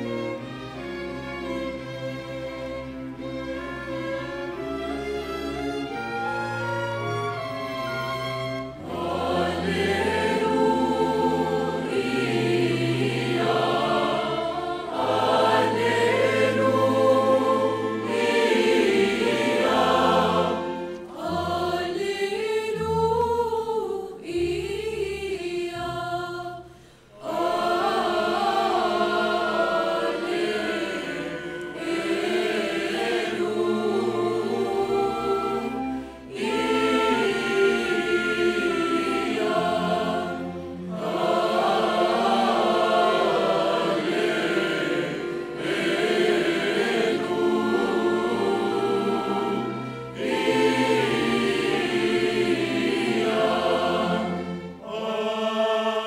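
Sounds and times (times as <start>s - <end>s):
strings and woodwinds orchestra: 0.0s - 26.4s, 27.1s - 56.0s
mixed choir singing: 6.9s - 56.0s.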